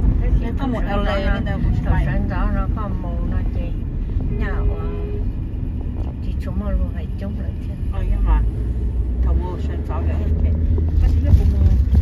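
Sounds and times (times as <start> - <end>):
car road noise rumble: 0.0 - 12.0.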